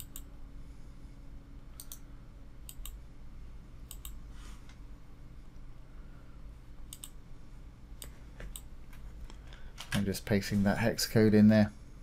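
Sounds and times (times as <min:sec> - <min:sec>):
computer mouse button clicks: 0:00.0 - 0:00.2
faint electrical hum: 0:00.0 - 0:12.0.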